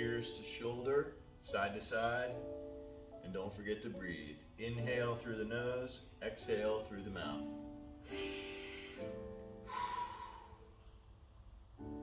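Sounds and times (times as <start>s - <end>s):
background music with sustained chords: 0.0s - 12.0s
man breathing: 8.0s - 10.9s.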